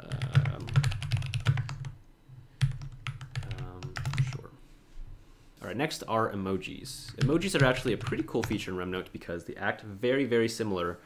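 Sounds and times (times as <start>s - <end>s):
computer keyboard typing: 0.0s - 2.0s, 2.6s - 4.5s, 7.0s - 8.6s.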